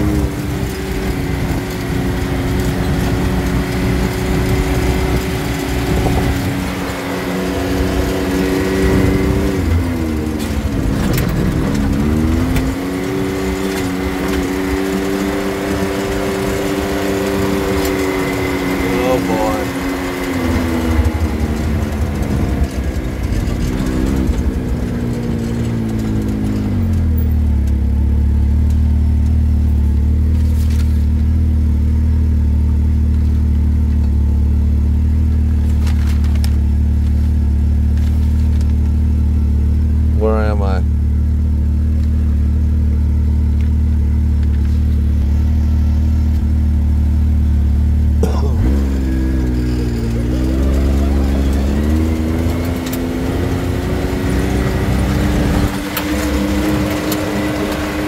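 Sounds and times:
utility vehicle engine idling: 0.0s - 58.0s.

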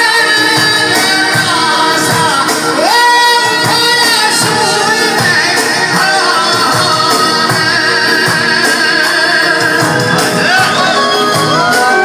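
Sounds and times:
keyboard accompaniment with beat: 0.0s - 12.0s
man singing into microphone: 0.0s - 12.0s.

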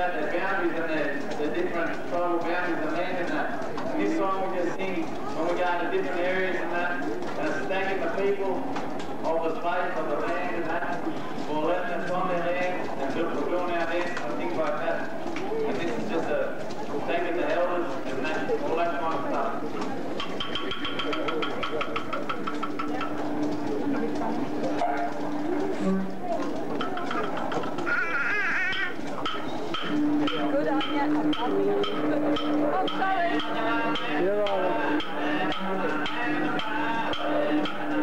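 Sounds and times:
rapid even tapping: 0.0s - 38.0s
wooden clapsticks knocking: 20.2s - 23.5s
man singing into a microphone: 33.2s - 38.0s.

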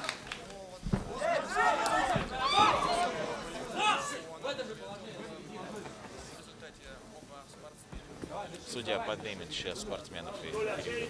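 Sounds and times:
men calling out: 1.1s - 4.6s.

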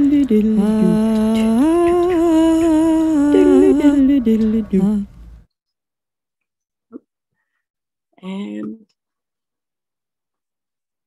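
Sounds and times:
person humming a slow melody: 0.0s - 5.0s.

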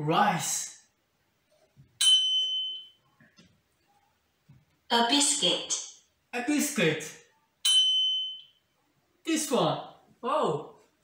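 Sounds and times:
bright electronic chime: 2.0s - 3.0s, 7.7s - 8.6s.

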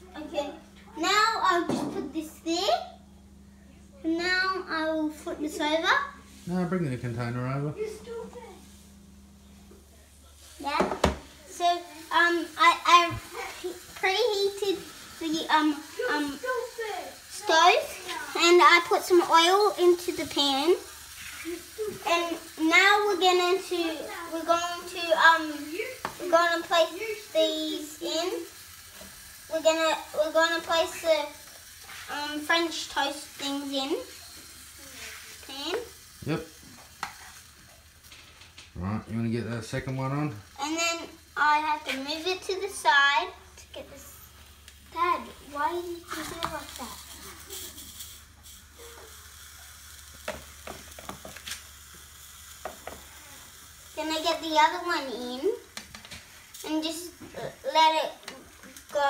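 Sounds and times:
bread sizzling in hot oil: 0.0s - 3.0s, 4.1s - 59.0s
child vocalizing: 34.8s - 35.8s, 53.1s - 54.1s, 56.7s - 59.0s.

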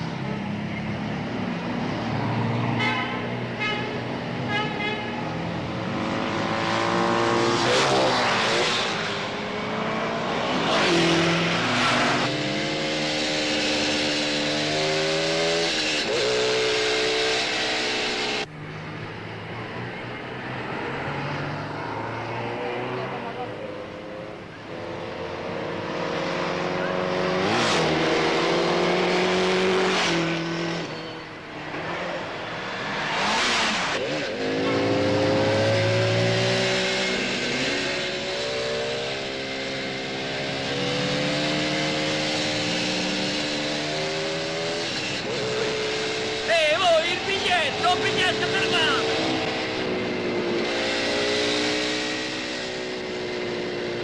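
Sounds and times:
motorcycle engines racing past: 5.1s - 54.0s.

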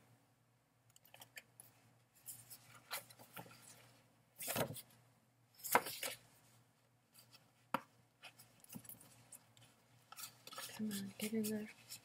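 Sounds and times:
paper rustling and scraping: 10.1s - 12.0s.

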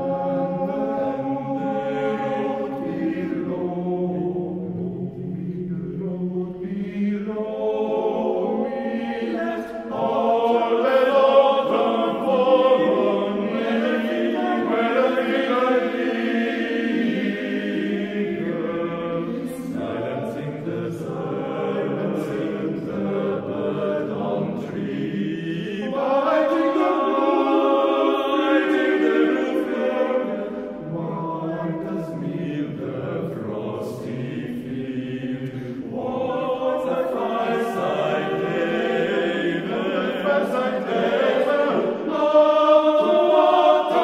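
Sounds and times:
men's choir singing: 0.0s - 44.0s.

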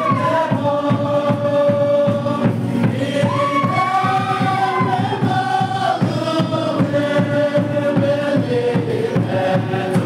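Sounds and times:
congregation singing a hymn: 0.0s - 10.0s
quick steady low beat: 0.0s - 10.0s.

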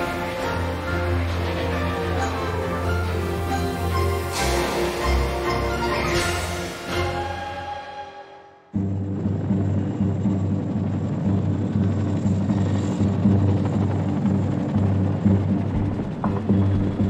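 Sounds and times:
helicopter rotors beating: 0.0s - 7.7s, 8.8s - 17.0s.

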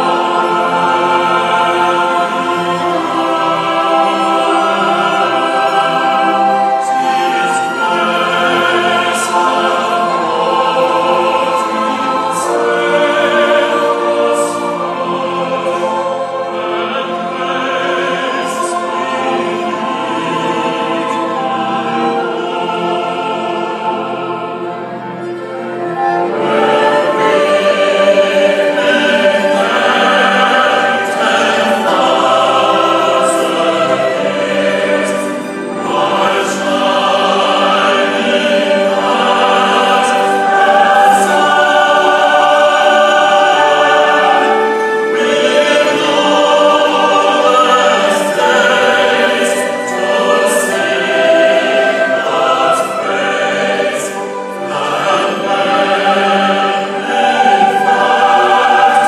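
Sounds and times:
choir singing sustained notes: 0.0s - 59.0s
orchestra playing: 0.0s - 59.0s.

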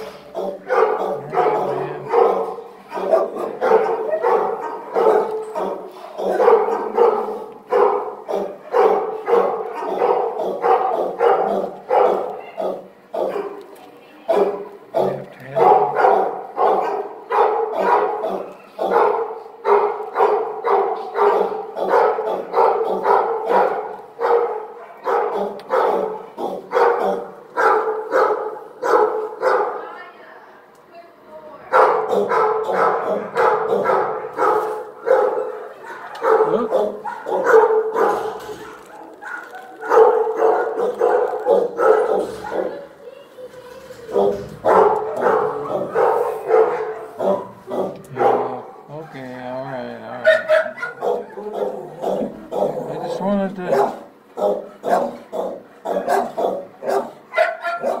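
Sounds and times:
dog barking: 0.0s - 13.7s, 14.3s - 29.9s, 31.7s - 42.9s, 44.1s - 49.2s, 50.1s - 58.0s.

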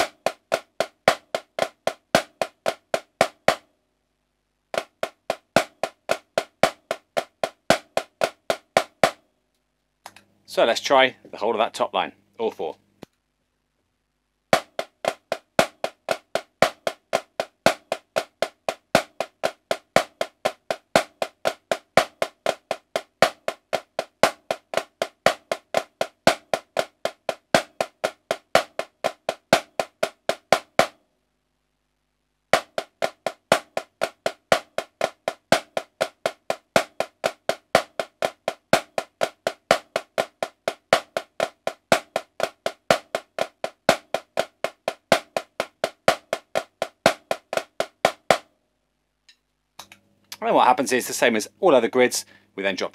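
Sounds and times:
marching snare drum: 0.0s - 3.6s, 4.7s - 9.2s, 14.5s - 31.0s, 32.5s - 48.5s.

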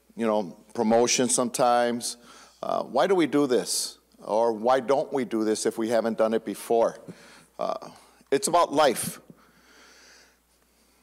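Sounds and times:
man breathing in close to microphone: 9.3s - 11.0s.

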